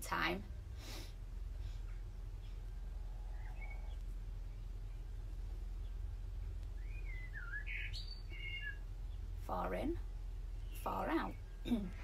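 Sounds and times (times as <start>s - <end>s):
steady low hum: 0.0s - 12.0s
bird chirping gliding calls: 2.4s - 12.0s.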